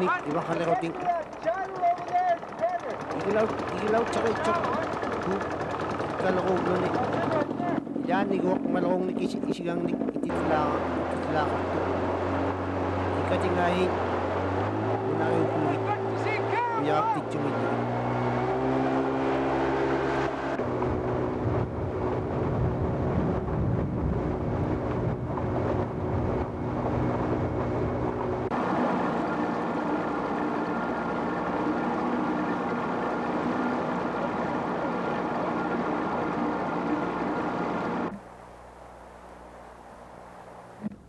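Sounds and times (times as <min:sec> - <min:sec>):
wind and water rushing: 0:00.0 - 0:38.1
outboard motor droning: 0:00.0 - 0:41.0.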